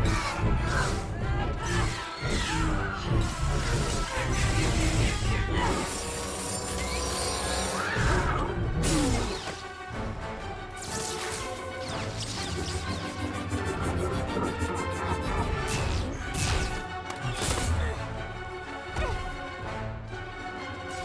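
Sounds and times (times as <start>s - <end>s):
lightsabers humming and clashing: 0.0s - 18.2s
dramatic film score: 0.0s - 21.0s.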